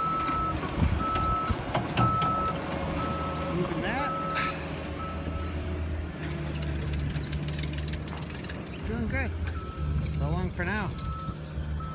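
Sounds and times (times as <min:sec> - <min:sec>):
construction machinery engine hum: 0:00.0 - 0:11.9.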